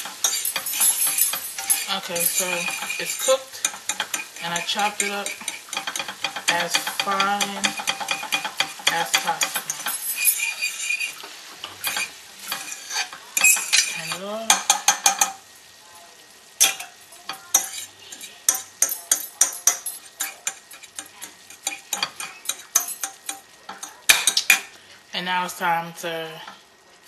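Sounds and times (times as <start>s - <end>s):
utensil scraping frying pan: 0.0s - 15.4s, 16.6s - 24.9s
meat sizzling: 0.0s - 27.0s.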